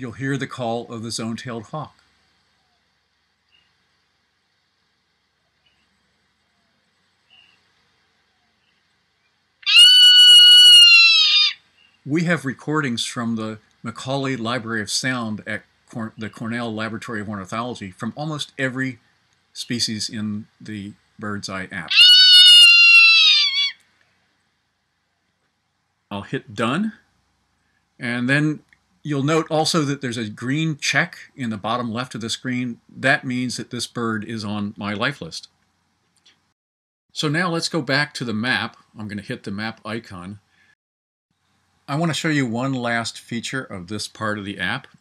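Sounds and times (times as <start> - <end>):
hawk screaming: 9.6 - 11.6, 21.8 - 23.8.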